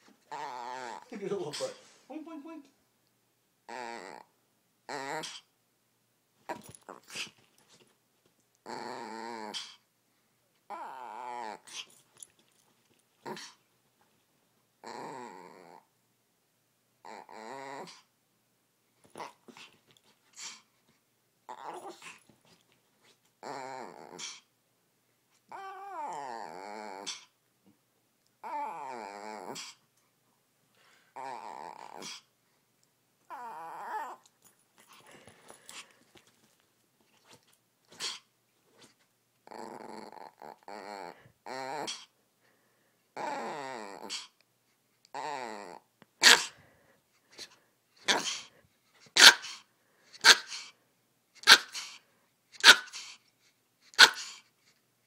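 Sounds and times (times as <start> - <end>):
dog growl-whining: 0.0 - 1.7, 3.6 - 5.5, 8.6 - 9.8, 10.6 - 12.0, 13.2 - 13.6, 14.8 - 15.9, 17.0 - 18.1, 21.5 - 22.3, 23.4 - 24.5, 25.5 - 27.4, 28.4 - 29.8, 31.1 - 32.3, 33.2 - 34.3, 37.3 - 42.1, 43.2 - 44.4, 45.1 - 46.6, 47.4 - 48.5.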